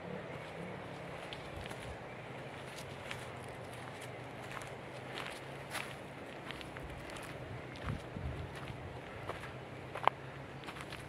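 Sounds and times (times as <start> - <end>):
footsteps on forest trail: 0.3 - 11.0.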